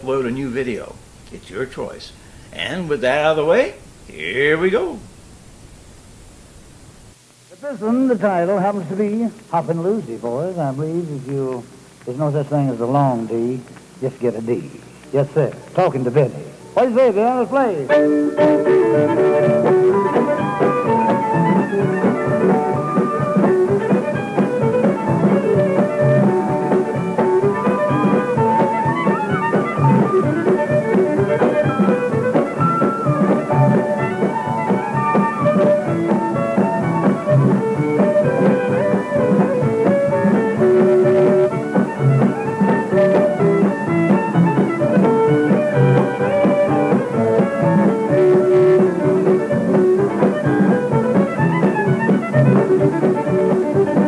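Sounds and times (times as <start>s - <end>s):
western swing band playing: 0.0s - 54.0s
fiddle: 14.1s - 54.0s.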